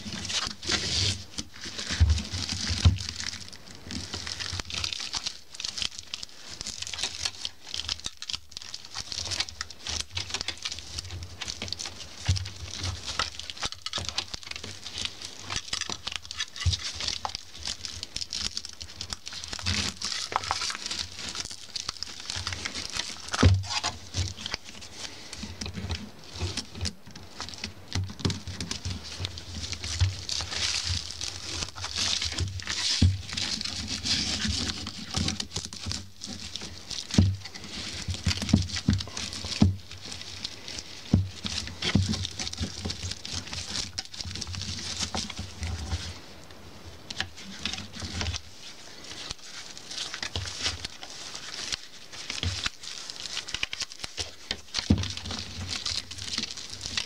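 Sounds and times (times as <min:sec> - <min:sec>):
broom bristles rustling: 0:00.0 - 0:57.0
small irregular clicks: 0:00.2 - 0:57.0.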